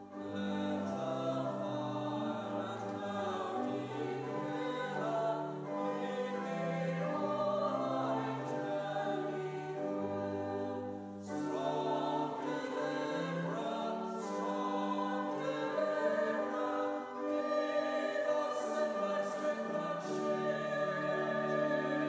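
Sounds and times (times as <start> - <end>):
congregation singing a hymn: 0.0 - 22.0
pipe organ: 0.0 - 22.0.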